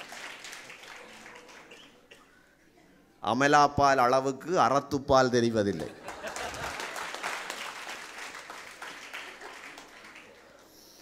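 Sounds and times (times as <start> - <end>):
crowd applauding: 0.0 - 2.0, 5.9 - 10.8.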